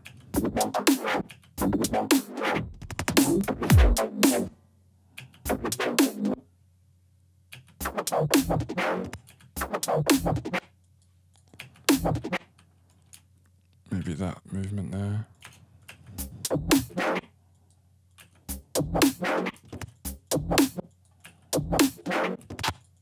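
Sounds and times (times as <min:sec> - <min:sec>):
chopped synthesized bass: 0:00.4 - 0:04.5.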